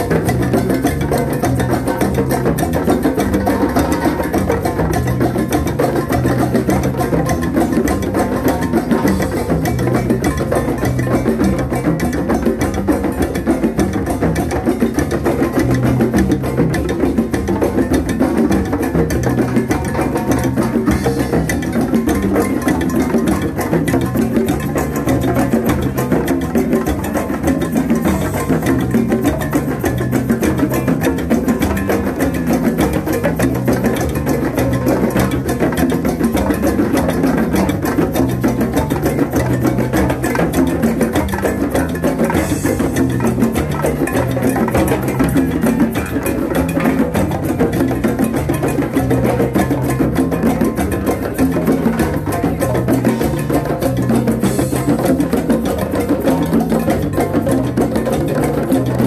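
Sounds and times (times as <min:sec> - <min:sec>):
hand drums playing: 0:00.0 - 0:59.0.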